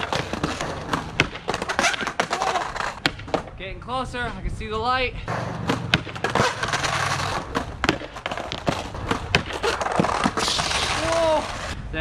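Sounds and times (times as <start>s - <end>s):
rushing skateboard scrape: 0.0s - 3.0s, 5.3s - 11.8s
skateboard wheels rolling on concrete: 0.0s - 11.8s.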